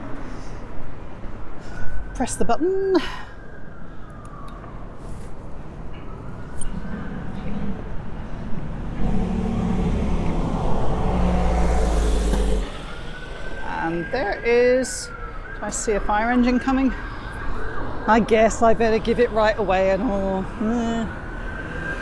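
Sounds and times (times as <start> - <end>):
road traffic: 0.0 - 22.0
fire engine siren wailing: 3.0 - 7.4, 8.1 - 22.0
heavy vehicle engine rumbling: 6.7 - 15.6.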